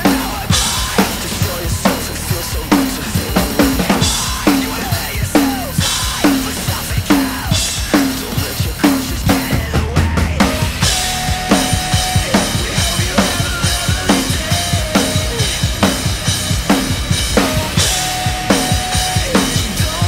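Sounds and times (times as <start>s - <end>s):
drum kit played hard: 0.0s - 20.0s
recorded backing track: 0.0s - 20.0s
crash cymbal hits: 10.7s - 14.7s.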